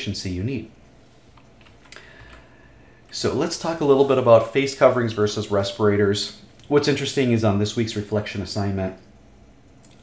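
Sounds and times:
computer keys clicking: 1.4 - 2.5.

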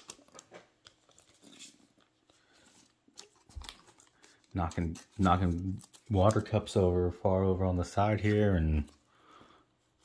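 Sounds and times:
plastic sleeves rustling and clicking: 0.0 - 6.9.

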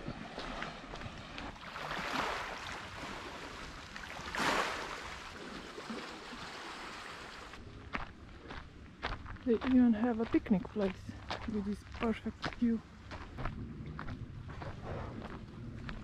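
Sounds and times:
faint footsteps on path: 0.0 - 1.6, 7.5 - 16.0
sea waves washing on rocks: 1.5 - 7.6.

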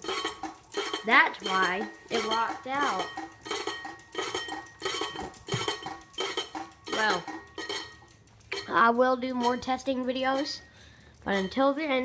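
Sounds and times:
fan blades clinking scrape: 0.0 - 12.0.

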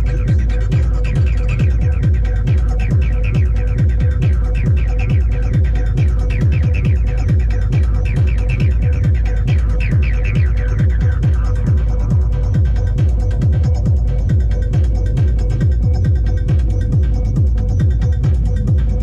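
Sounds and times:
kick and bass beat: 0.0 - 19.0
sustained synth drone: 0.0 - 19.0.

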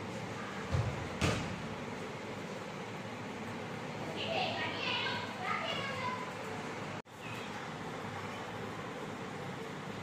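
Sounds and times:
steady background noise: 0.0 - 10.0
child speaking: 4.0 - 8.6.

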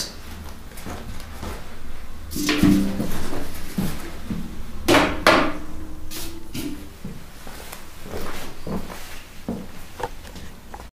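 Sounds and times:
handpan being handled: 2.3 - 4.0
ringing handpan note: 2.3 - 4.8.

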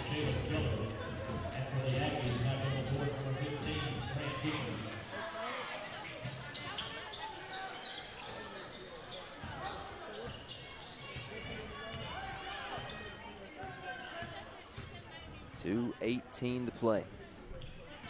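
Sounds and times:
crowd chatter: 0.0 - 18.0.

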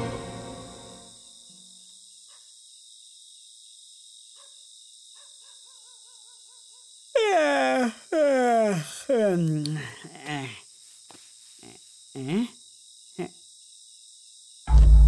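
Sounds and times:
crickets chirping: 0.0 - 14.9.

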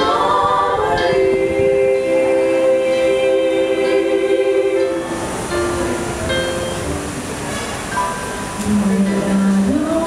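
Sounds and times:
women singing in harmony: 0.0 - 5.3, 8.6 - 10.0.

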